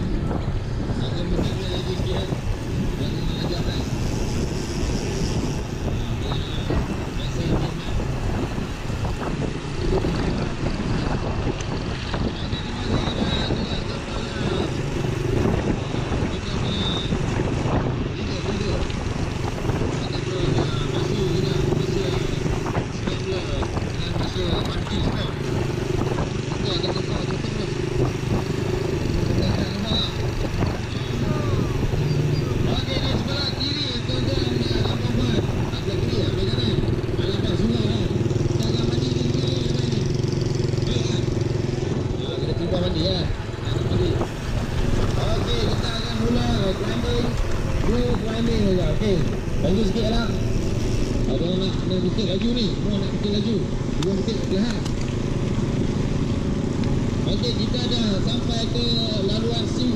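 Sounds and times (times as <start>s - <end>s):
small motorcycle engine running: 0.0s - 59.9s
wind and road noise: 0.0s - 59.9s.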